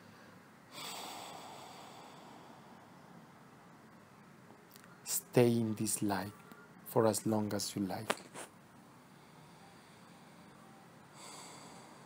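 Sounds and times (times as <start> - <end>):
person breathing through nose: 11.2 - 12.0.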